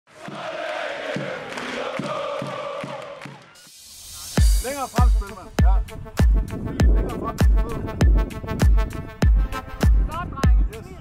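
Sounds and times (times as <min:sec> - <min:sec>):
crowd chanting a sung note: 0:00.1 - 0:03.6
drum hits: 0:04.4 - 0:10.6.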